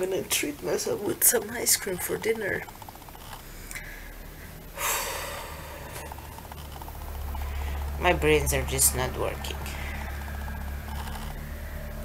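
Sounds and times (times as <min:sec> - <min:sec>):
woman breathing in: 0:03.5 - 0:06.2.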